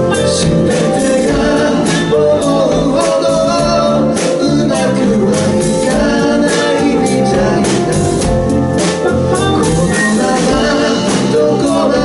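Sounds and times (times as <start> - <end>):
live pop band playing: 0.0 - 12.0
man singing lead vocal: 0.0 - 12.0.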